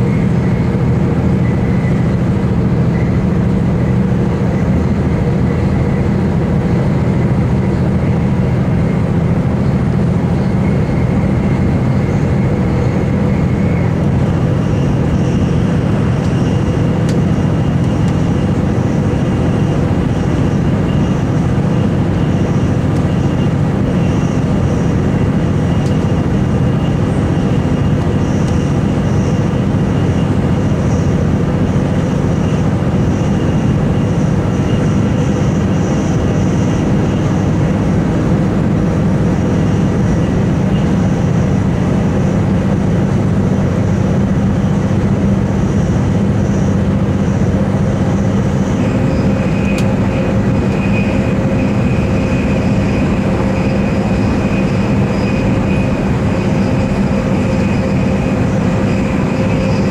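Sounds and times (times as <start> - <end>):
diesel train engine drone: 0.0 - 59.9
faint high whine: 0.0 - 59.9
wheels on rail: 0.0 - 59.9.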